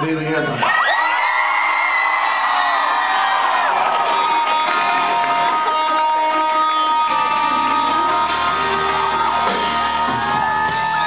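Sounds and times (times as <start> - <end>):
crowd cheering and whooping: 0.6 - 11.0
bass guitar: 3.9 - 11.0
electric guitar ringing notes: 4.0 - 11.0.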